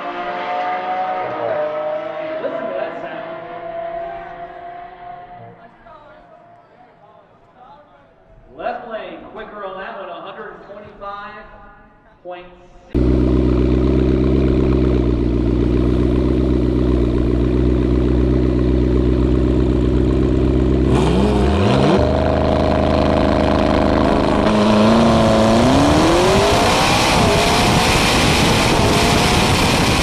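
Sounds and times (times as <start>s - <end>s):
car engine idling and revving: 13.0s - 30.0s.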